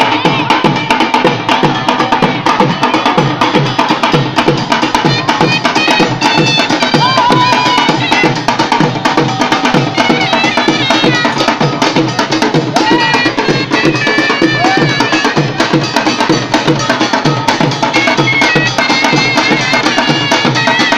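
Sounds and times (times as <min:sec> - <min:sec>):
barrel drums beating: 0:00.0 - 0:20.9
sharp clacking drum strokes: 0:00.0 - 0:20.9.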